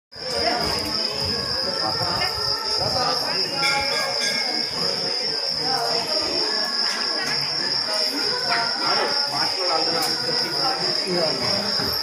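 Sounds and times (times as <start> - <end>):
crickets droning: 0.2 - 12.0
murmur of voices: 0.2 - 12.0.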